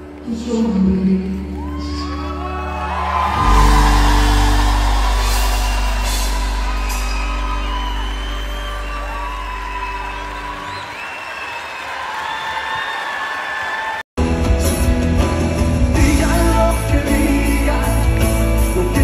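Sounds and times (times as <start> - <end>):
crowd cheering and whooping: 1.4 - 14.1
live band low chord: 3.4 - 10.1, 14.2 - 19.0.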